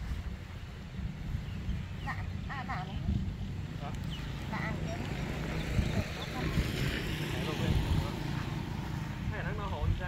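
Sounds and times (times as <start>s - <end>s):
faint voices talking: 1.9s - 10.0s.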